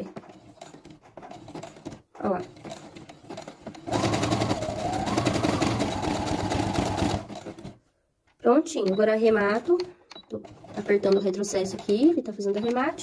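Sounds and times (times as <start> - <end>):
sewing machine running: 0.0 - 7.8, 9.4 - 13.0.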